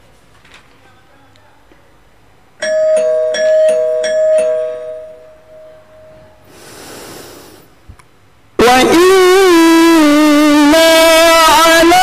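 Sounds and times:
electronic doorbell chime: 0:02.6 - 0:06.5.

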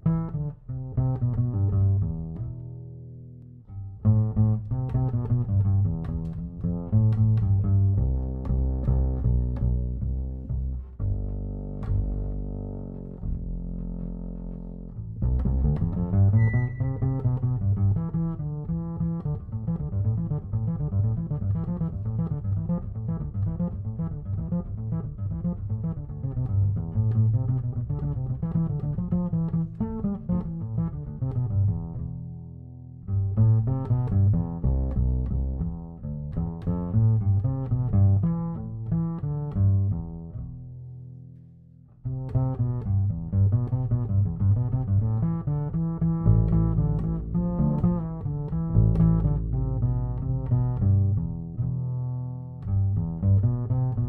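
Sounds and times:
double bass plucked: 0:00.0 - 0:54.0.

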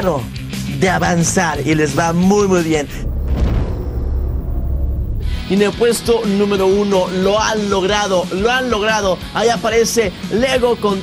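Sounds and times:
deep boom rumble sound effect: 0:00.8 - 0:07.2.

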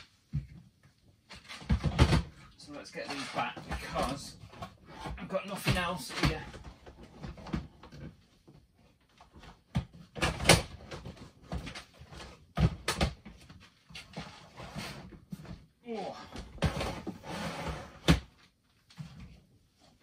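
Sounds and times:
plastic crates knocking and clattering: 0:01.3 - 0:04.6, 0:05.4 - 0:08.1, 0:09.5 - 0:13.5.

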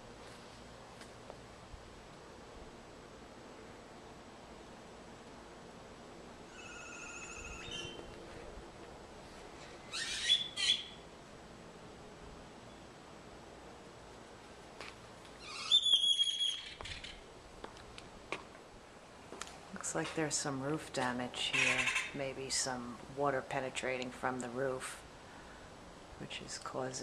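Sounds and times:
faint outdoor background: 0:00.0 - 0:27.0
bird calling in wavering bursts: 0:06.4 - 0:08.1, 0:09.8 - 0:11.1, 0:15.4 - 0:17.3, 0:21.5 - 0:22.2.

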